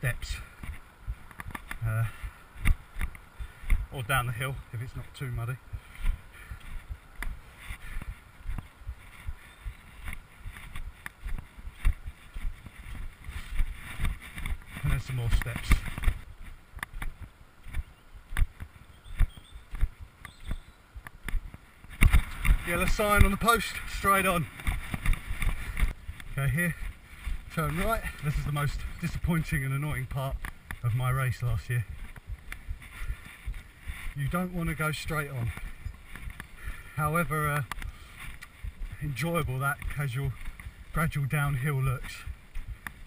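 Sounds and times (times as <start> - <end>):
running footfalls on dirt trail: 0.1 - 43.0.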